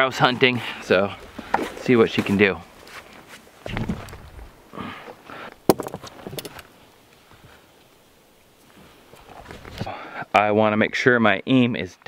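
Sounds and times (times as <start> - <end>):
footsteps on grass: 1.1 - 4.6
handling noises: 1.2 - 6.8.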